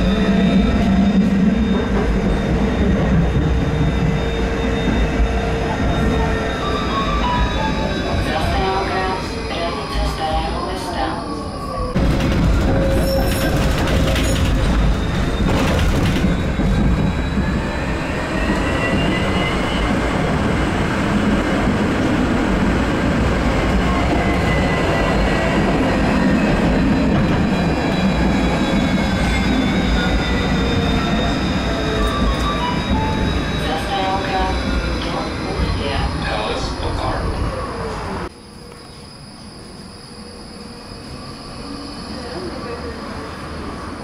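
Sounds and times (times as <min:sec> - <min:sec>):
tram wheels rumbling on rails: 0:00.0 - 0:39.1.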